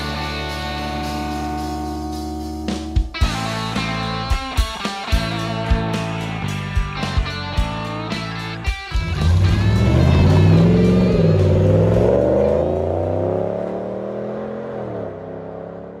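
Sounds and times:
rock music with drum hits: 0:00.0 - 0:13.4
pickup truck engine revving: 0:08.9 - 0:16.0.

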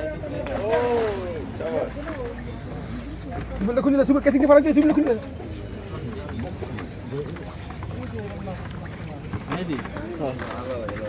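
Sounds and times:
fish thrashing in water: 0:00.0 - 0:11.0.

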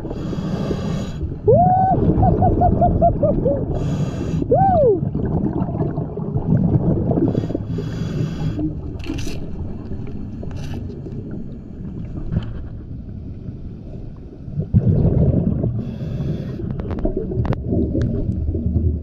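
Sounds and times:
bubbling exhalations: 0:00.0 - 0:11.4, 0:14.5 - 0:19.0
low underwater rumble: 0:01.2 - 0:19.0
scuba regulator hissing inhalations: 0:03.8 - 0:04.5, 0:07.3 - 0:08.8.

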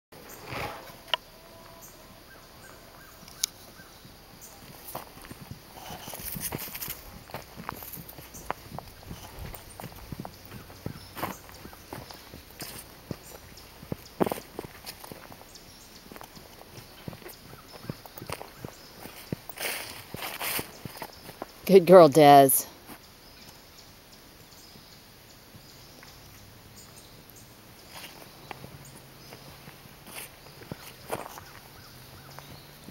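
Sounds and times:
footsteps on dry ground and grass: 0:04.6 - 0:21.6, 0:27.9 - 0:32.7.

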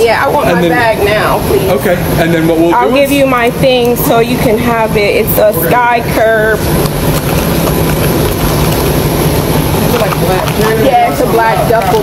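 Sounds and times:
aircraft drone: 0:00.0 - 0:12.0
high whine: 0:00.0 - 0:12.0.

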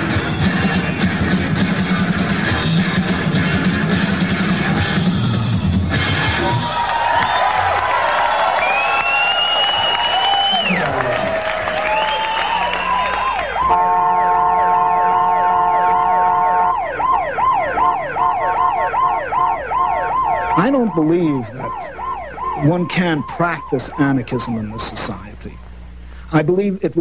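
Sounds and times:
wailing sirens: 0:06.3 - 0:25.9
fast yelp siren: 0:06.5 - 0:25.8
horn blast: 0:10.5 - 0:26.0.

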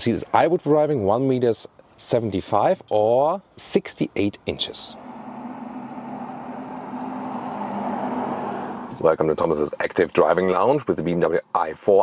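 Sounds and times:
electric car driving by: 0:04.8 - 0:09.3.

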